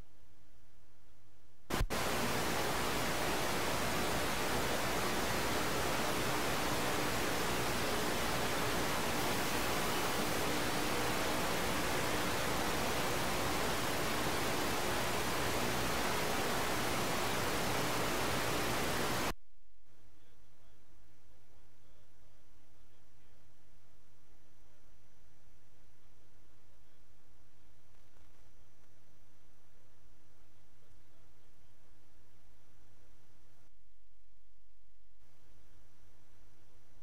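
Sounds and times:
static hiss: 0:01.6 - 0:19.3, 0:22.8 - 0:33.7.

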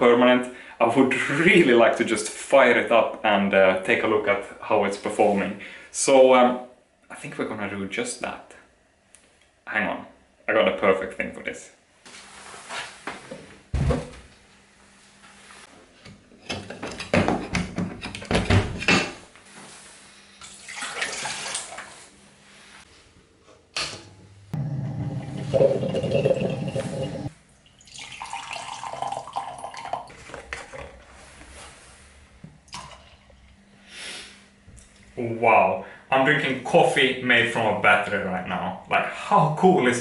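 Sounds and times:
coffee maker bubbling and gurgling: 0:24.6 - 0:31.1
water sounds: 0:24.6 - 0:31.2
glass carafe clinking: 0:25.3 - 0:30.1.

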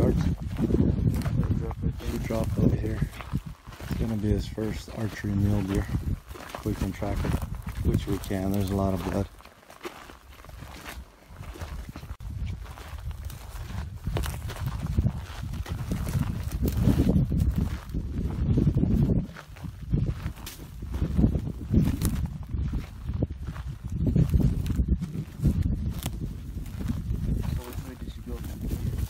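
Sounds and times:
wind buffeting microphone: 0:00.0 - 0:09.4, 0:10.0 - 0:29.0
footsteps crunching through brush: 0:00.0 - 0:29.0.

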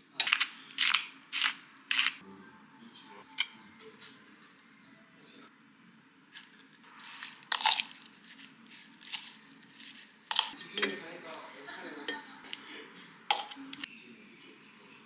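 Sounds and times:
salad servers clinking on bowl: 0:07.0 - 0:11.1, 0:13.3 - 0:13.9.

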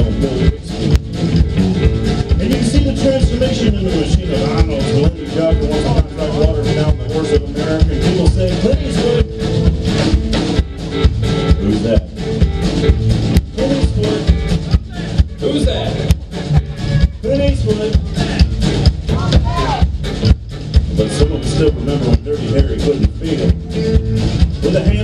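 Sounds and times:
electric guitar: 0:00.0 - 0:07.0
steady drumbeat: 0:00.0 - 0:25.0
upright bass: 0:00.0 - 0:25.0.

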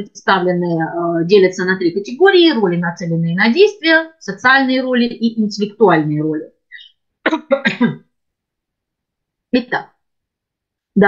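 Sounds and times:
woman clearing her throat: 0:07.2 - 0:08.1.

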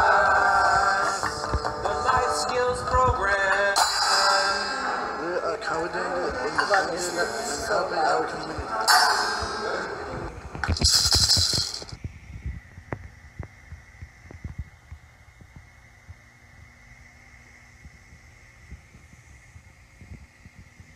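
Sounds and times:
faint steady hum: 0:00.0 - 0:20.9
hand percussion rattling: 0:10.6 - 0:12.0.

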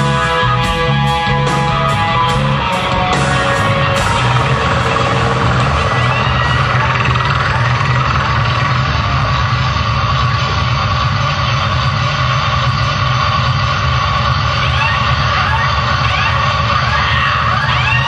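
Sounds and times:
live rock band playing: 0:00.0 - 0:09.2.

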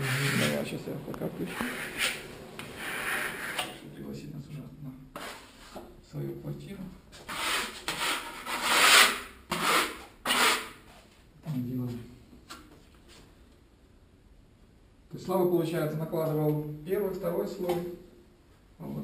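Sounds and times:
trowel scraping plaster: 0:00.0 - 0:00.7, 0:01.4 - 0:03.8, 0:05.2 - 0:05.8, 0:07.2 - 0:10.8.

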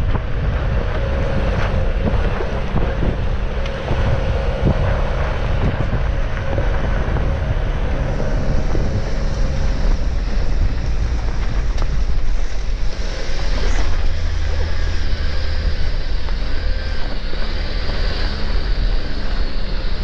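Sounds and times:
engine and tyres rumbling: 0:00.0 - 0:20.0
stones clicking under tyres: 0:00.0 - 0:20.0
wind buffeting microphone: 0:00.0 - 0:20.0.

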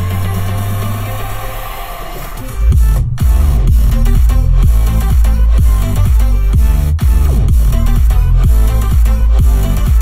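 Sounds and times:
electronic music in car cabin: 0:00.0 - 0:10.0
steady deep bass note: 0:00.0 - 0:10.0
heavy bass hits with falling pitch: 0:02.5 - 0:10.0.

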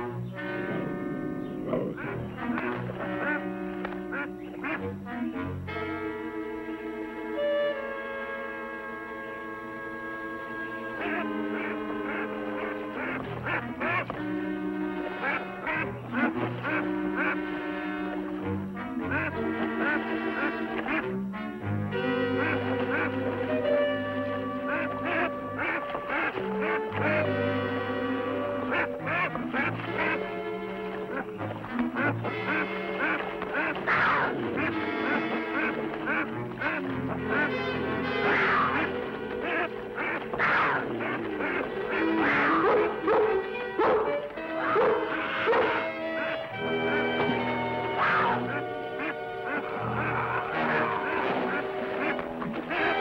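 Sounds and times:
dramatic orchestral music: 0:00.0 - 0:53.0
goose honking: 0:00.0 - 0:53.0.

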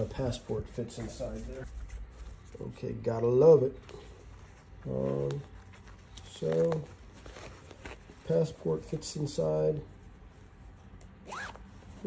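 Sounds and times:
zipper being pulled: 0:11.2 - 0:11.7.

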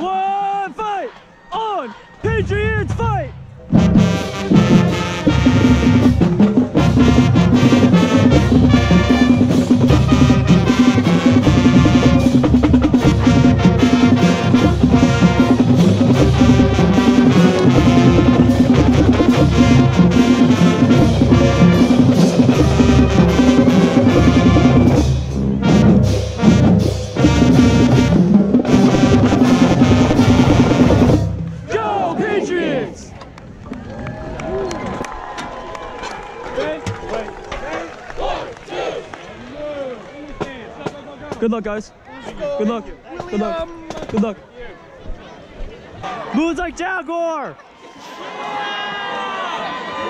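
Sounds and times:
crowd chatter: 0:00.0 - 0:50.0
marching band playing: 0:02.4 - 0:33.0.

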